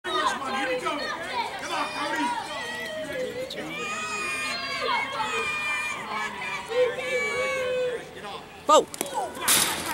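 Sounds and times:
overlapping chatter of voices: 0.0s - 9.9s.

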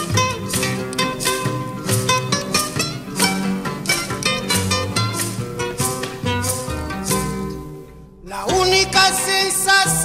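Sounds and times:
acoustic guitars plucked and strummed: 0.0s - 10.0s
bass line: 0.0s - 10.0s.

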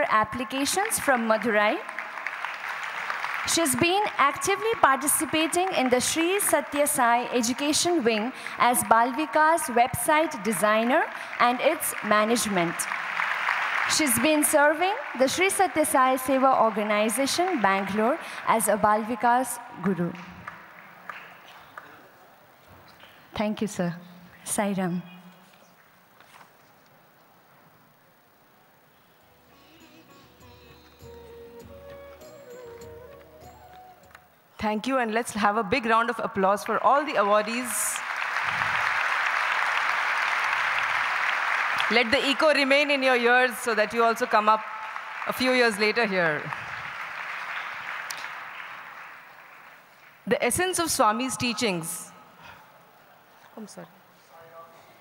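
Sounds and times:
woman speaking over microphone: 0.0s - 1.8s, 3.5s - 12.9s, 13.9s - 20.2s, 23.4s - 25.2s, 34.6s - 38.0s, 41.9s - 44.6s, 45.3s - 46.5s, 50.3s - 52.2s
large audience applauding: 0.5s - 19.1s, 19.8s - 22.6s, 36.7s - 50.3s.

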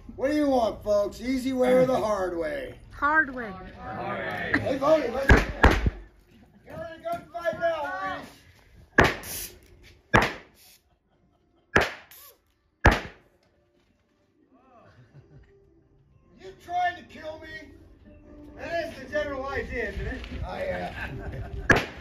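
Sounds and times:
gunshots: 5.3s - 6.1s, 9.0s - 9.4s, 10.1s - 10.6s, 11.8s - 12.2s, 12.8s - 13.2s, 21.7s - 22.0s.

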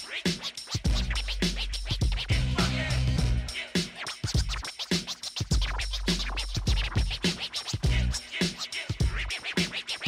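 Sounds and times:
hip-hop beat with bass and kick drum: 0.0s - 10.0s
record scratching: 0.0s - 10.0s.

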